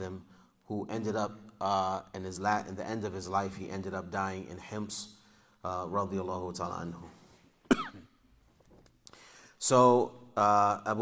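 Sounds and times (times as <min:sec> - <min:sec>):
man coughing: 0:07.7 - 0:08.2.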